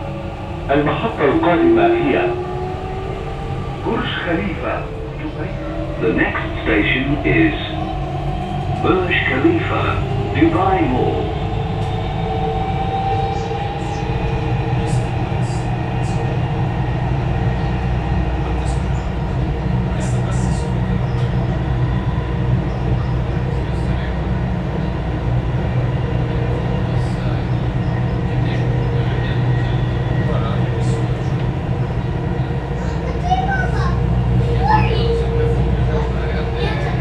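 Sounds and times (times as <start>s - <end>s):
train drive hum and whine: 0.0s - 37.0s
train rumbling on track: 0.0s - 37.0s.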